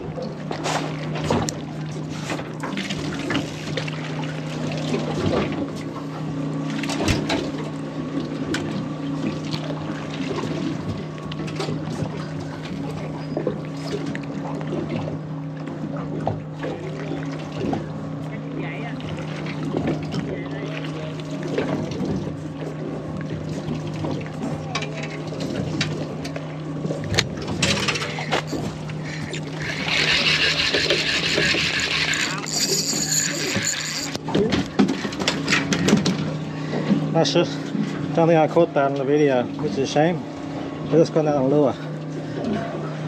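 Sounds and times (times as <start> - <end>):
boat engine idling: 0.0 - 43.0
fish splashing: 26.9 - 35.1
spinning reel clicking: 29.6 - 34.2.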